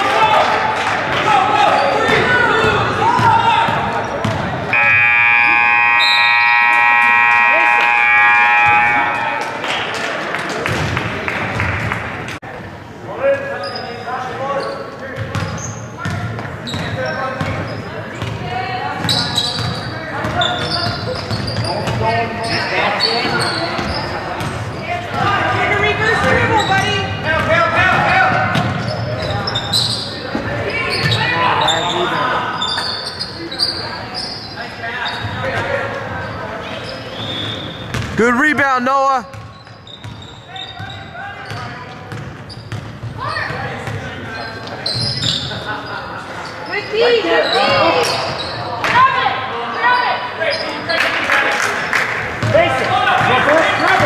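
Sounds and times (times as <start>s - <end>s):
voices echoing: 0.0s - 54.0s
scoreboard horn blast: 4.7s - 9.7s
basketball bouncing on wooden court: 15.2s - 17.6s, 37.9s - 38.2s, 39.3s - 40.2s, 41.4s - 44.1s.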